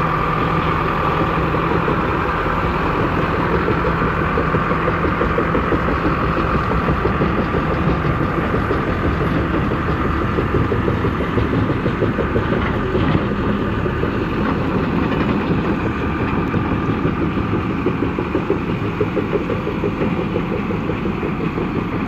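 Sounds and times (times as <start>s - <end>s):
tracked vehicle engine droning: 0.0s - 22.0s.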